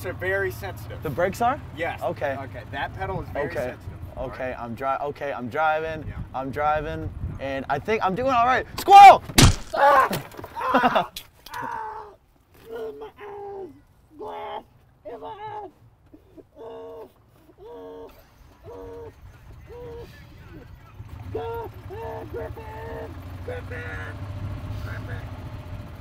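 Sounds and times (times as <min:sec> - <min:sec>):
golf cart running: 0:00.0 - 0:07.2, 0:16.8 - 0:26.0
person moaning: 0:16.5 - 0:18.1.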